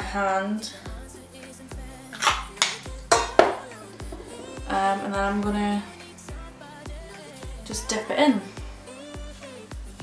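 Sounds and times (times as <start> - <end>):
background music with steady beat: 0.0 - 10.0
small bottle clicks and clatters: 2.2 - 3.6.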